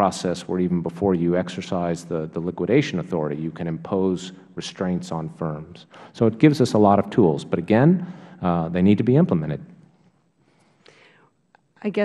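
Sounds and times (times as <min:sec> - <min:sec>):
faint breathy sound: 0:05.8 - 0:06.3, 0:08.0 - 0:08.5, 0:10.4 - 0:11.4.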